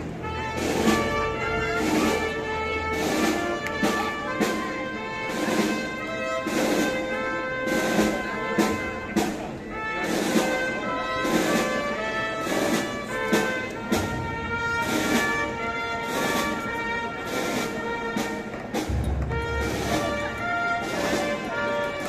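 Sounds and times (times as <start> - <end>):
wind band playing a march: 0.0 - 22.0
percussion strikes: 0.2 - 10.5, 12.4 - 22.0.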